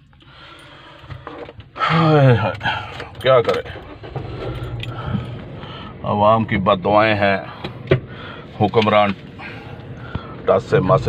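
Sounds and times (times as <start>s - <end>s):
car cabin hum: 1.0s - 11.0s.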